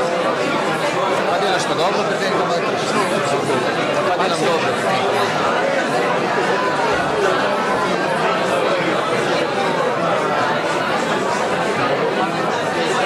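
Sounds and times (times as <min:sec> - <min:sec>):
overlapping chatter of voices: 0:00.0 - 0:13.0.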